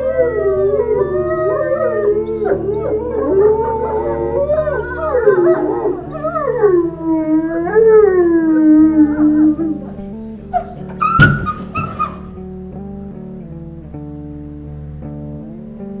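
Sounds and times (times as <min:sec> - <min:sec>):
wolves howling: 0:00.0 - 0:12.5.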